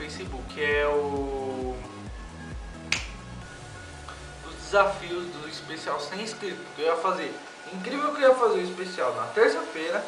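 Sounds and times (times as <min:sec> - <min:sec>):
music with low beat: 0:00.0 - 0:05.3
finger snap: 0:02.8 - 0:03.4.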